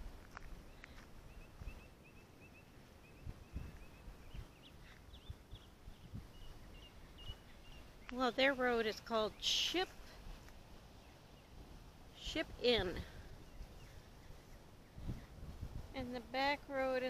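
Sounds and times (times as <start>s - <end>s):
footsteps on gravel: 0.0s - 1.8s
small bird chirping: 0.7s - 9.9s.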